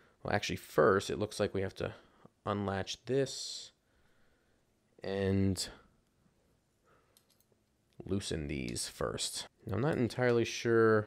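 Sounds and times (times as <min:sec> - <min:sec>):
faint clicks of belt buckle parts: 0:07.1 - 0:08.0.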